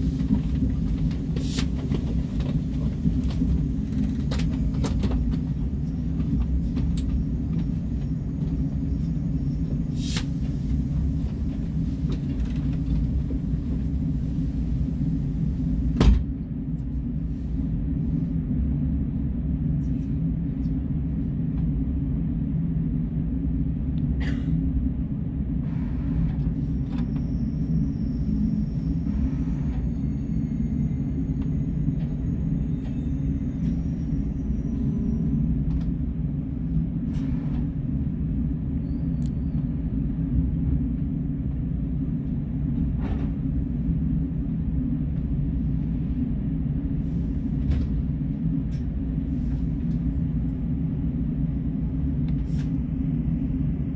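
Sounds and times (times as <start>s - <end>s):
train cabin rumble: 0.0s - 53.9s.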